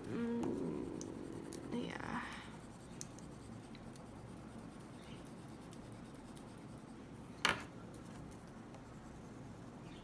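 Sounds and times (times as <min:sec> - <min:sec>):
pastel scratching on paper: 0:00.6 - 0:07.0.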